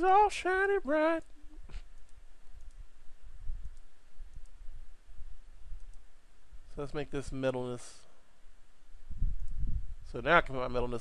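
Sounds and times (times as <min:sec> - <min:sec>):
man speaking: 0:00.0 - 0:01.3, 0:06.7 - 0:08.1, 0:10.1 - 0:11.0
low steady rumble: 0:00.0 - 0:11.0
computer mouse clicks: 0:01.2 - 0:02.8, 0:03.6 - 0:04.6, 0:05.7 - 0:06.1.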